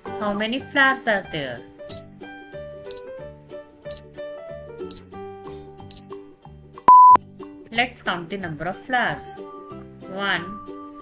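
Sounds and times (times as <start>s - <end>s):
soft children's music: 8.5s - 11.0s.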